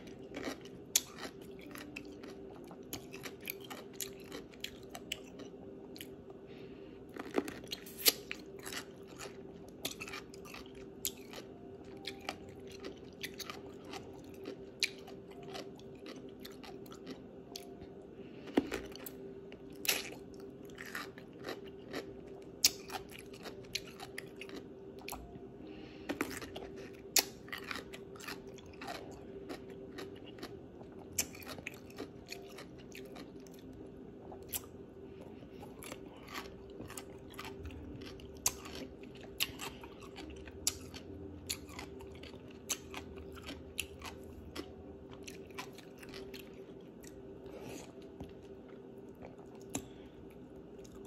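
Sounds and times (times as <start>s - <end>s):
wet chewing: 0.0s - 6.1s, 7.1s - 17.8s, 18.4s - 25.4s, 26.0s - 51.0s
low hum: 0.0s - 51.0s.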